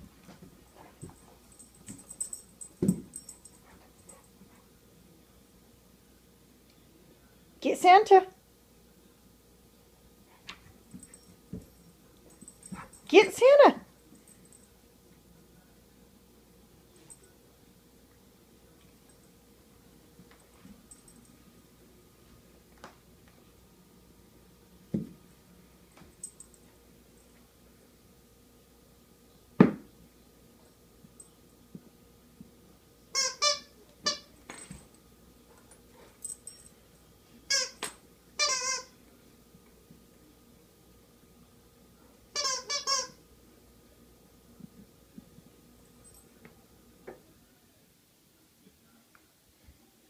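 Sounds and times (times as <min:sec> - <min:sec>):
squeak toy chirps: 0:33.2 - 0:34.2, 0:38.4 - 0:38.9, 0:42.4 - 0:43.2.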